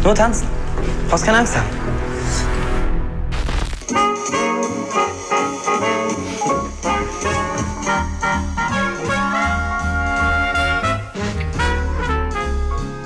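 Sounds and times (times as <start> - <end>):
swing jazz with brass: 4.0 - 13.0
bass line: 6.5 - 13.0.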